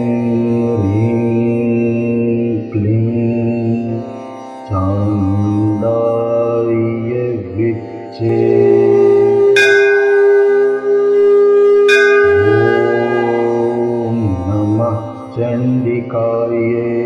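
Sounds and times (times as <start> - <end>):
long held drone note: 0.0 - 17.0
wavering melodic line: 8.3 - 16.8
bell ringing: 9.4 - 11.0, 11.8 - 15.4.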